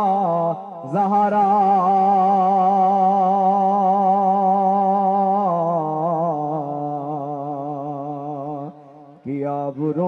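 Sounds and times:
man singing long vibrato note: 0.0s - 10.0s.

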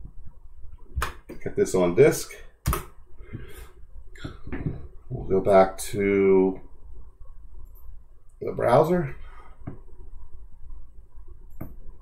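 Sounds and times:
soft exhale: 3.2s - 3.8s.

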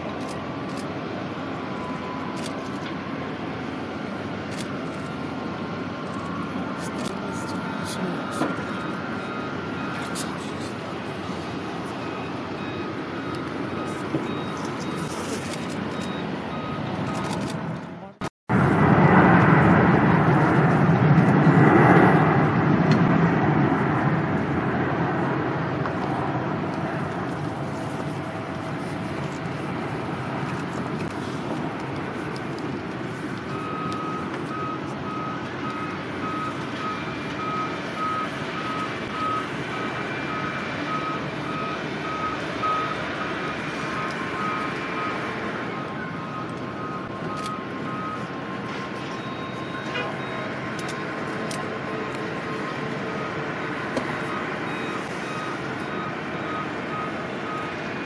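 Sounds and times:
vehicle reversing beeper: 0.1s - 18.2s, 24.7s - 58.0s.

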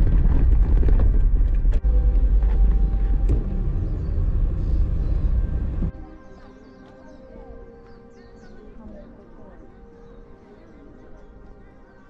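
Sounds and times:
car engine and road rumble: 0.0s - 5.9s.

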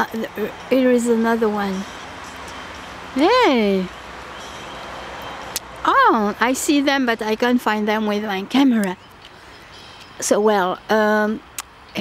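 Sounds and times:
distant road traffic hum: 0.0s - 12.0s.

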